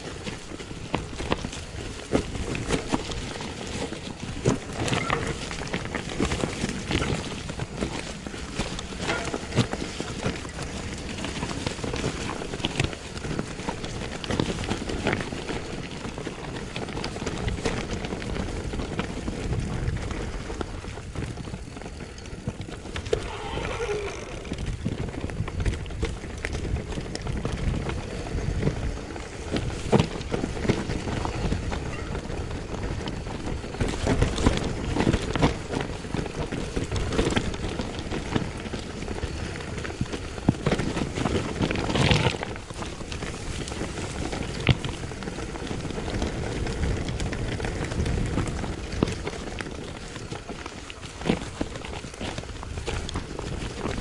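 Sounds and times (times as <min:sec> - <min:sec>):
bike knocks and rattles: 0:00.0 - 0:23.1
bike tyres over dirt and stones: 0:00.0 - 0:54.0.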